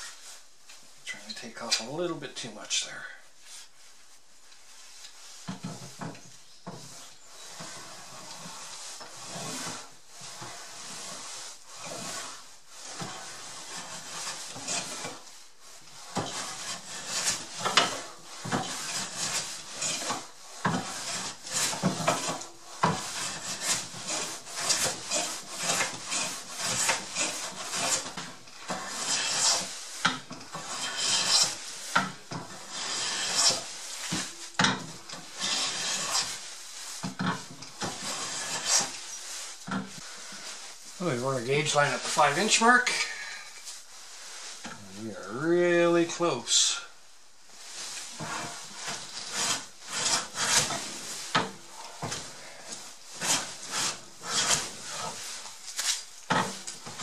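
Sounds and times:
hand plane scraping wood: 0:05.4 - 0:43.1, 0:47.8 - 0:57.0.

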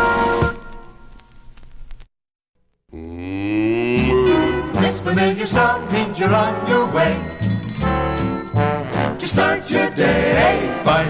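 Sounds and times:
cow mooing: 0:03.0 - 0:04.7
brass band chord: 0:07.8 - 0:09.6.

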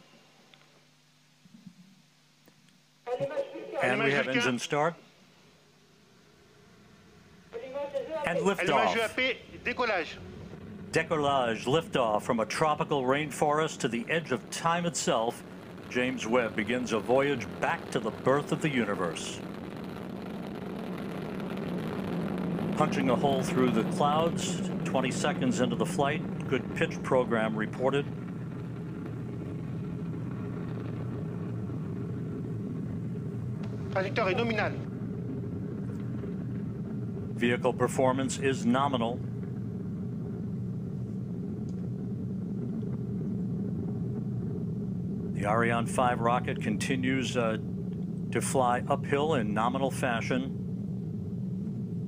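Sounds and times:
rocket engines roaring: 0:07.0 - 0:52.0.

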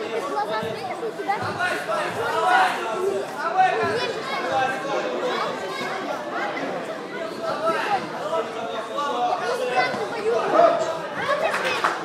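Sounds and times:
spectators talking and calling out: 0:00.0 - 0:12.0.

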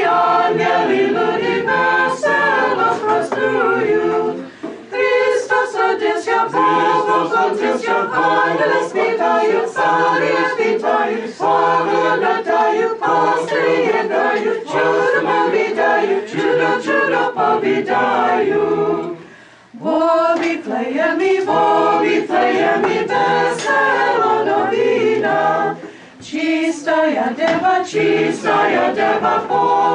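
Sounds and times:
small choir singing a cappella: 0:00.0 - 0:29.9.

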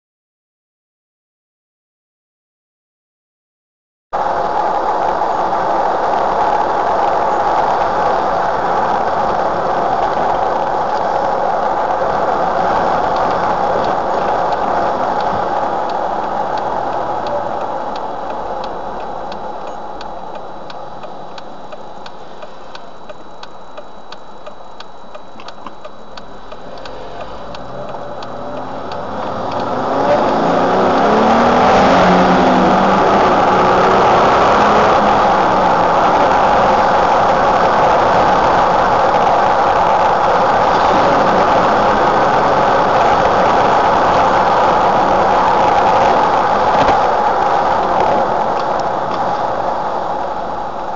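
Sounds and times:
car engine and road noise: 0:04.1 - 0:50.9
faint regular ticking: 0:07.1 - 0:31.6
engine revving: 0:26.6 - 0:49.9.

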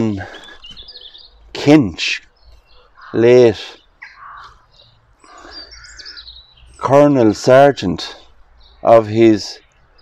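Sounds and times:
high bird chirps: 0:00.0 - 0:01.5, 0:02.2 - 0:10.0
birds calling faintly: 0:00.0 - 0:10.0.

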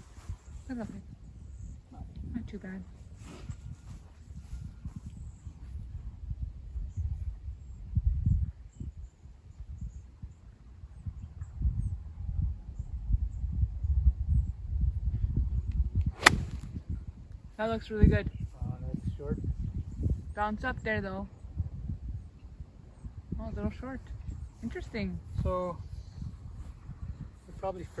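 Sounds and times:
wind rumble on microphone: 0:00.0 - 0:28.0
golf club striking ball: 0:16.2 - 0:16.7.

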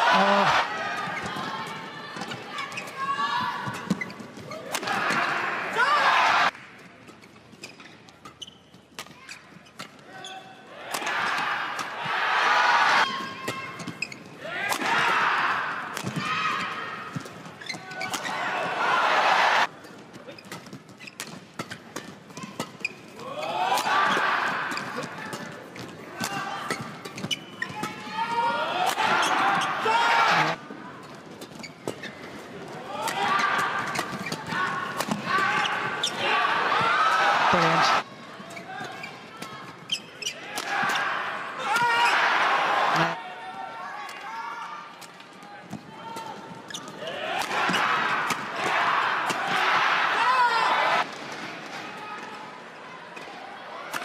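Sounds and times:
spectator crowd noise: 0:00.0 - 0:06.6, 0:10.5 - 0:13.8, 0:14.4 - 0:19.8, 0:23.2 - 0:26.8, 0:28.0 - 0:31.0, 0:32.5 - 0:54.0
shoe squeaks on court: 0:07.2 - 0:10.4, 0:13.8 - 0:14.3, 0:17.6 - 0:18.4, 0:20.3 - 0:21.8, 0:26.7 - 0:28.0, 0:39.9 - 0:40.4, 0:42.9 - 0:43.2, 0:46.7 - 0:47.0.

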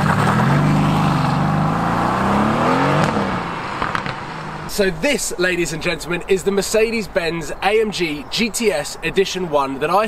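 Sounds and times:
car engine accelerating: 0:00.0 - 0:04.7.

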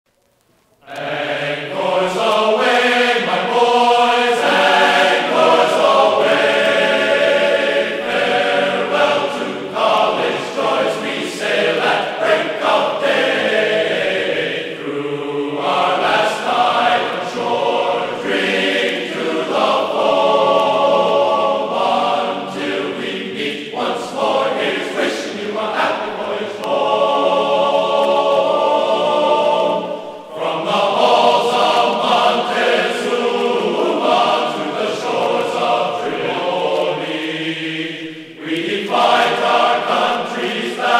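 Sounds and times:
choir singing in harmony: 0:00.8 - 0:40.9.

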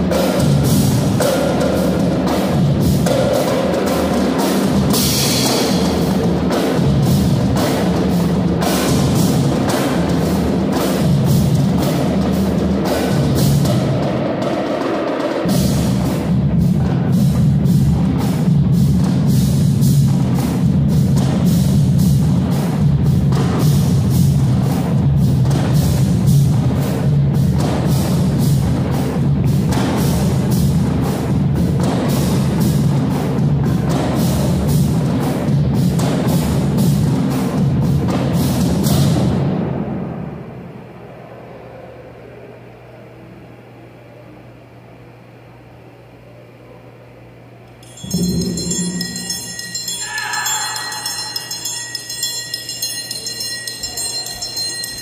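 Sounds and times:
percussion band drumming: 0:00.0 - 0:39.9, 0:47.8 - 0:55.0
low drums: 0:00.0 - 0:40.5, 0:47.8 - 0:55.0
cymbal crash: 0:47.8 - 0:55.0.

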